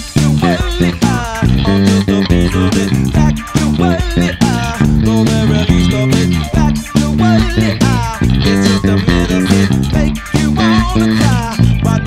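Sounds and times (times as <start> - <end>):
electric bass guitar fingerstyle: 0.0 - 12.0
funk-rock band with drums and guitar: 0.0 - 12.0.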